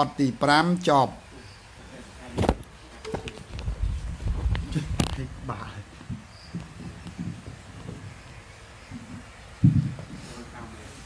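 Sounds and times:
handling thump: 2.3s - 3.3s.

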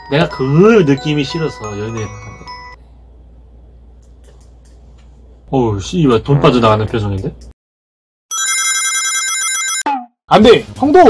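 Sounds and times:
trilling telephone ring: 8.3s - 9.9s.

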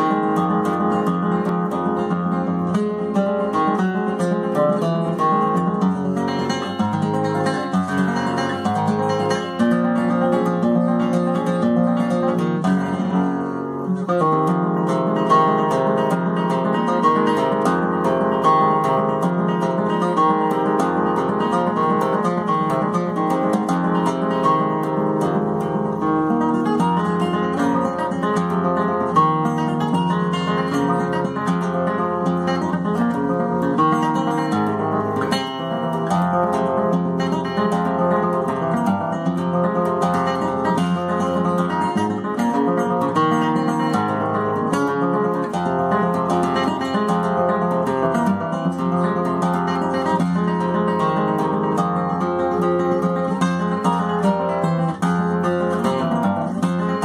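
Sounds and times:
fingerpicked classical guitar: 0.0s - 57.0s.

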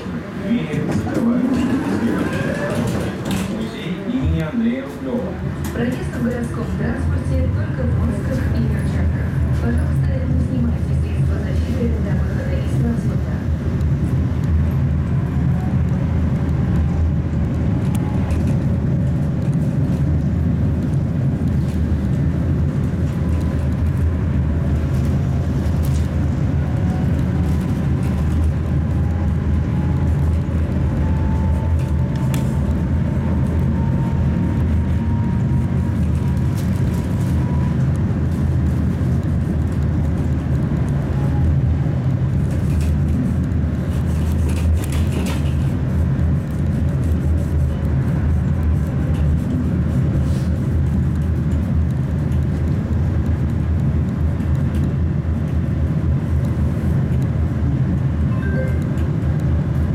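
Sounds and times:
tram rumbling along track: 0.0s - 59.9s.

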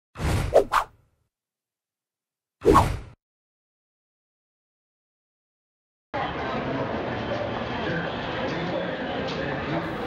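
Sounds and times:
quick swishes: 0.2s - 0.9s, 2.6s - 3.2s.

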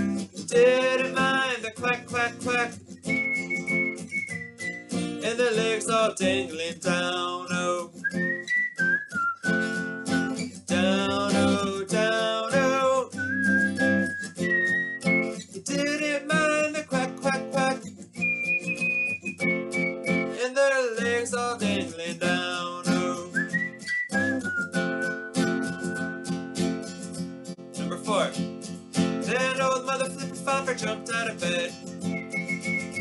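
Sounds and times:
man singing: 0.0s - 2.9s, 5.2s - 8.2s, 10.7s - 13.9s, 15.4s - 17.9s, 20.3s - 23.6s, 29.2s - 31.9s
acoustic guitar strumming: 0.0s - 33.0s.

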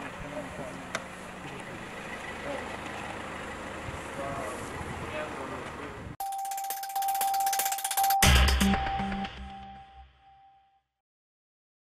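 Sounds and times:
rapid ticking pulse: 6.2s - 9.6s
electronic held tone: 6.2s - 10.8s.

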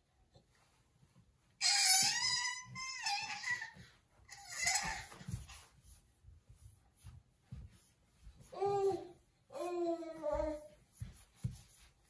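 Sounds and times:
baby squealing: 1.6s - 5.1s.

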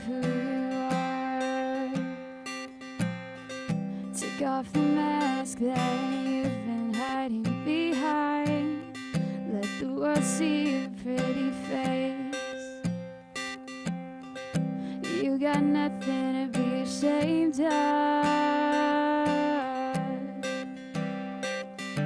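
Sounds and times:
woman singing: 0.0s - 2.9s, 3.7s - 13.0s, 14.6s - 21.1s
acoustic guitar strumming: 0.0s - 22.0s.

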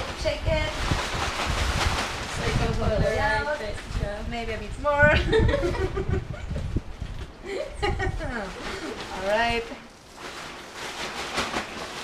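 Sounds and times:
wind buffeting microphone: 0.0s - 9.7s
fabric and plastic rustling: 0.0s - 12.0s.

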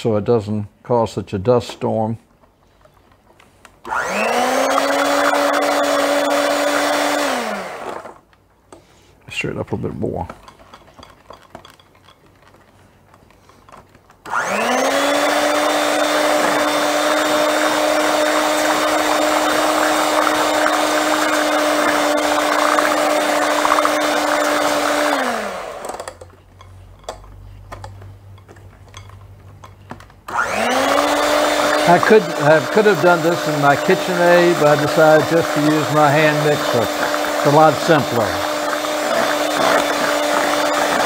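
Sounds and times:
electric hand mixer whining: 3.8s - 8.3s, 14.2s - 26.3s, 30.3s - 41.0s.

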